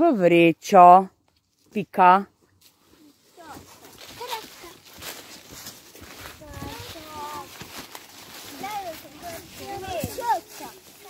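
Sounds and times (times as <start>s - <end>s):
footsteps in dry leaves: 2.5s - 11.0s
children chattering and calling: 2.9s - 11.0s.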